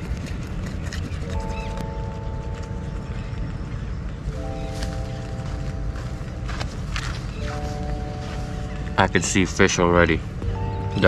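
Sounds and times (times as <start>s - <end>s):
music with sustained notes: 1.1s - 11.0s.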